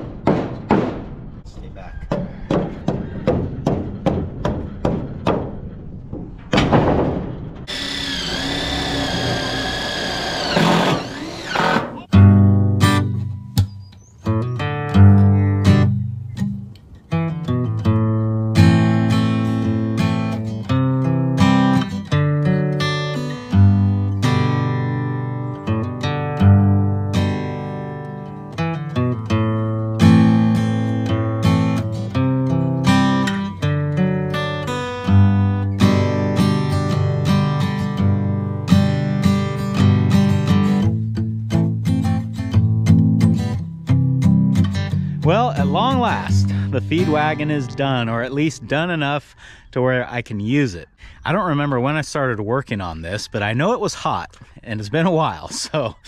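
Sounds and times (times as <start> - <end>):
sledgehammer knocking wooden boards: 0.0 - 1.4, 2.1 - 7.8
acoustic guitar music: 12.0 - 49.2.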